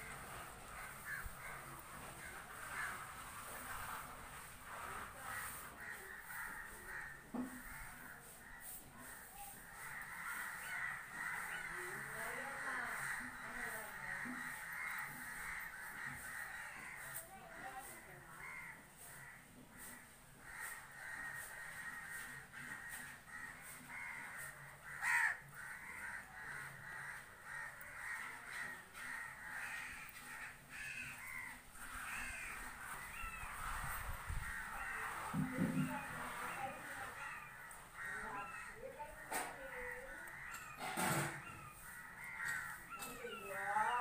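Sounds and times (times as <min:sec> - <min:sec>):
crows cawing: 0:00.0 - 0:44.0.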